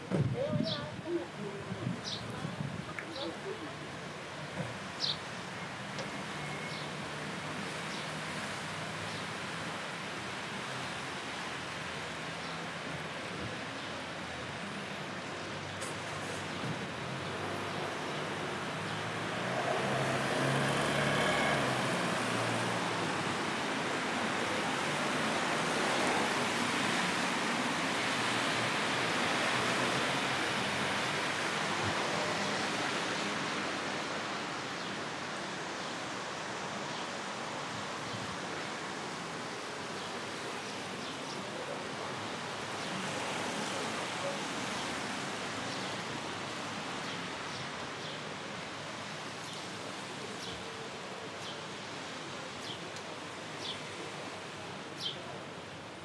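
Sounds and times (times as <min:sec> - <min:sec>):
faint voices of passers-by: 0:00.0 - 0:56.0
traffic hiss on wet road: 0:00.4 - 0:56.0.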